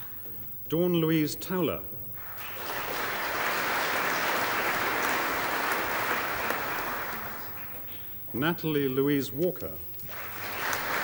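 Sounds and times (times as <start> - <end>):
audience applause: 2.2 - 7.9, 10.1 - 11.0.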